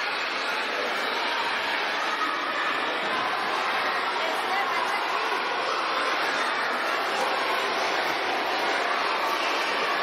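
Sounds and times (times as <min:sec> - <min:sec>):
crowd of children talking: 0:00.0 - 0:10.0.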